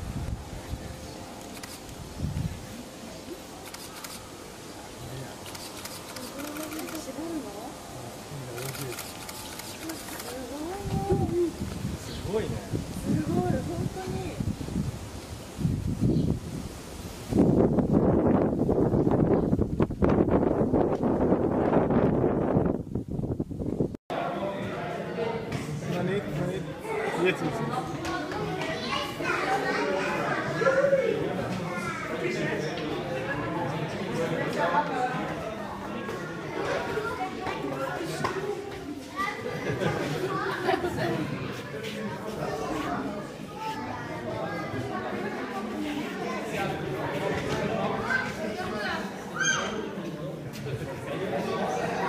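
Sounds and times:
chatter of people and children: 0:00.0 - 0:22.4, 0:24.1 - 0:52.0
people talking indistinctly: 0:05.0 - 0:14.6.

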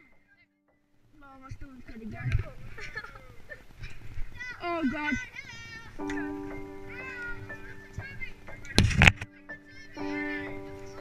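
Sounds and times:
background music tones: 0:00.0 - 0:02.0, 0:05.9 - 0:11.0.

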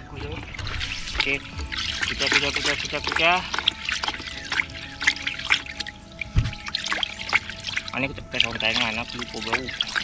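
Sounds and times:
liquid sloshing in plastic basin: 0:00.0 - 0:10.0.

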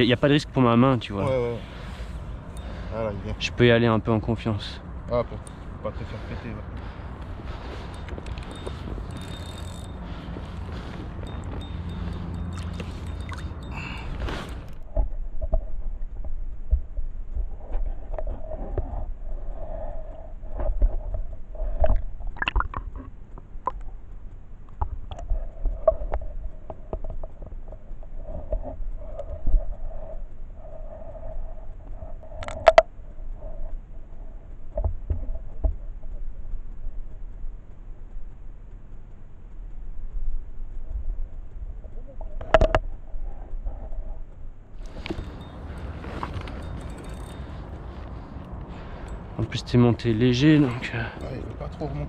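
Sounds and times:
faint hum: 0:00.0 - 0:52.0.

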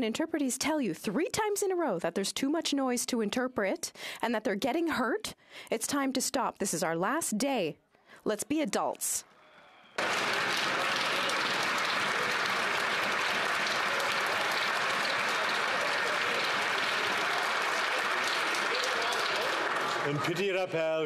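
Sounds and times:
crowd applauding: 0:09.6 - 0:21.0.

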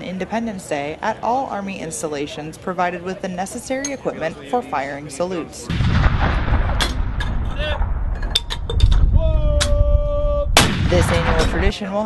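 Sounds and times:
salute guns firing: 0:10.6 - 0:11.7.

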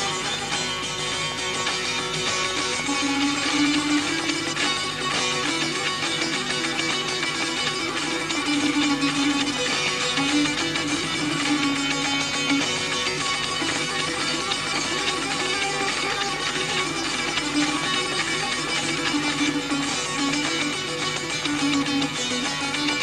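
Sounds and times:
tanbur strummed rapidly: 0:00.0 - 0:23.0.

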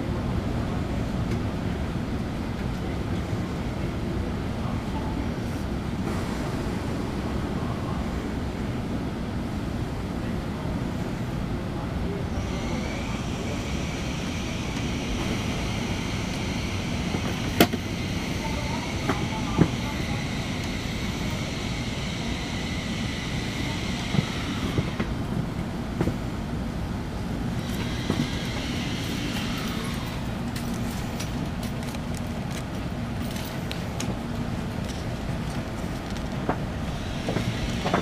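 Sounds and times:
train interior hum: 0:00.0 - 0:38.0.

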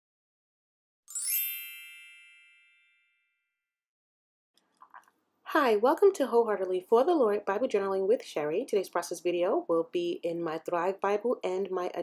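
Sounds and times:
bright synthetic chime: 0:01.1 - 0:03.5.

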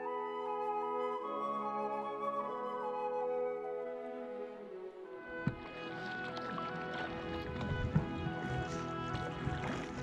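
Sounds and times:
instrumental background music: 0:00.0 - 0:10.0
paddle strokes splashing water: 0:05.3 - 0:10.0.

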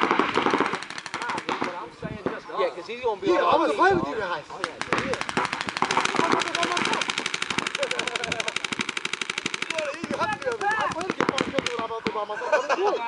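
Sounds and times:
paintball markers firing: 0:00.0 - 0:02.4, 0:04.5 - 0:12.3
players shouting: 0:09.4 - 0:12.0.

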